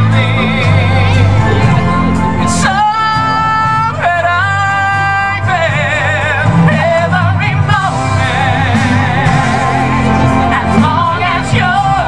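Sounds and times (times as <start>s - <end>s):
musical accompaniment: 0.0s - 12.0s
woman and man singing duet: 0.0s - 12.0s.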